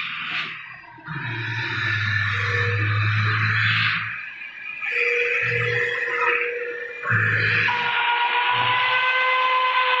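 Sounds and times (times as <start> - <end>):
high-pitched metal squeal: 0.0 - 10.0.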